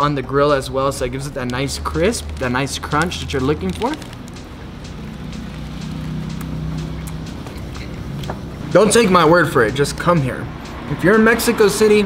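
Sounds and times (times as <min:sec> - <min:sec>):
chewing clicks: 0:01.4 - 0:08.3.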